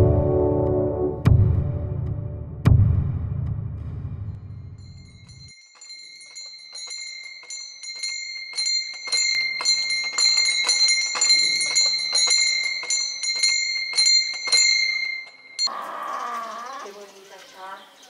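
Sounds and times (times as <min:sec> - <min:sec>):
steady ringing tone: 0:04.4 - 0:15.7
small brass bells jingling: 0:04.8 - 0:15.7.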